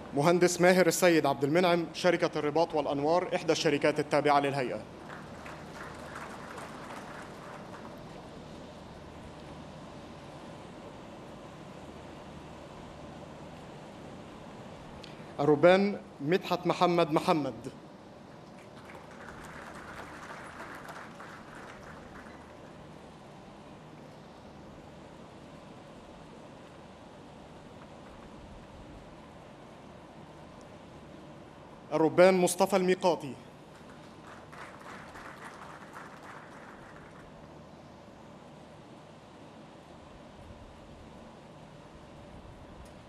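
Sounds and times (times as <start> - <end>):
faint audience applause: 4.6 - 9.1, 18.4 - 23.3, 33.6 - 37.7.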